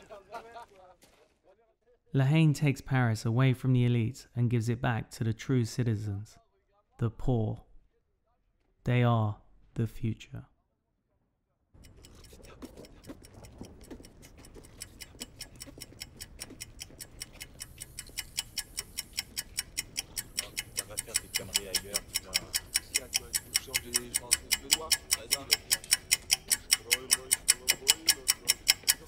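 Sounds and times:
clock ticking quickly: 11.8 - 29.0.

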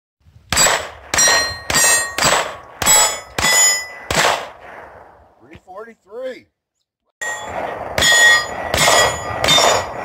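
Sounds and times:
bullets ringing steel target: 0.5 - 4.4, 7.2 - 10.0.

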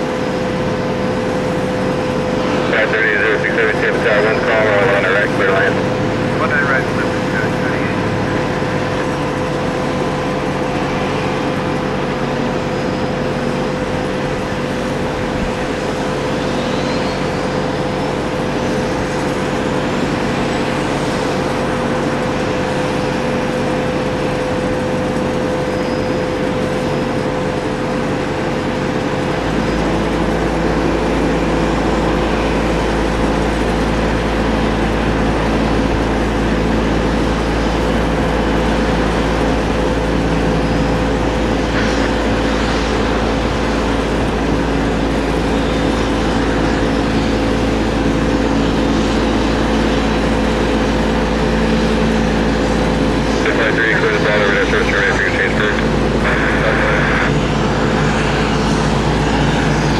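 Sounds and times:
jet airliner turbine drone: 0.0 - 59.9.

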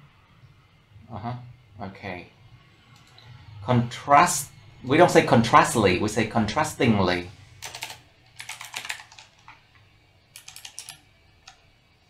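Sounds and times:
computer keyboard typing: 7.6 - 9.6, 10.3 - 11.6.

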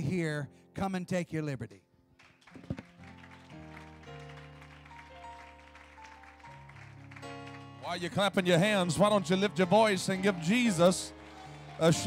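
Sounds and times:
soft keyboard chords: 2.8 - 12.0.

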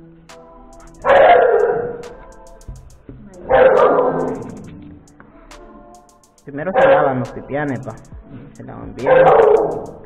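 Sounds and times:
background music: 0.0 - 10.0
dog barking: 1.0 - 2.0, 3.5 - 4.5, 9.0 - 9.8.

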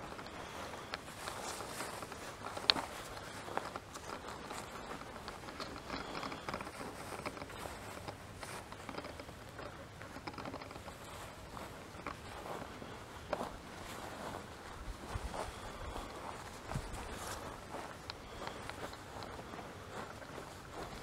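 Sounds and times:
clothing rustling: 0.0 - 21.0
footsteps on dry grass: 0.0 - 21.0.

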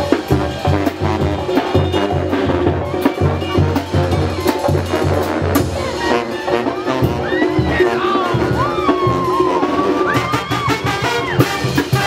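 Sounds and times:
bass drum beat: 0.0 - 12.0
brass band music: 0.0 - 12.0.

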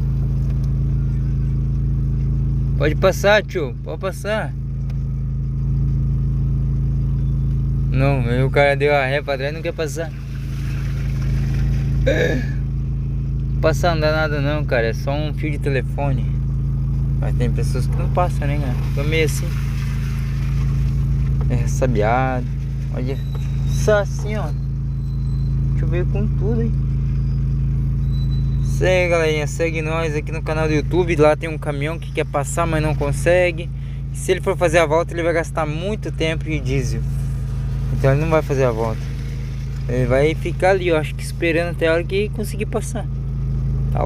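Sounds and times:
car engine idling: 0.0 - 44.0.

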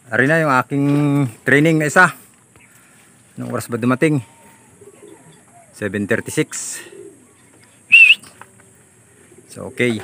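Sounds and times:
loud high whistle: 7.9 - 8.3.

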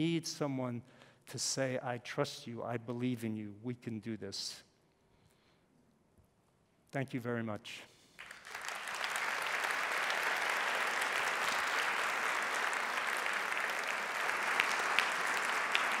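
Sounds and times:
audience applauding: 8.2 - 16.0.

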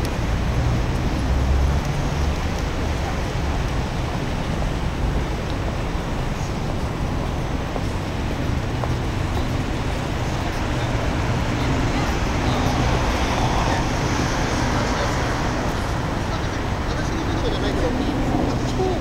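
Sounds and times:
city road traffic hum: 0.0 - 19.0.

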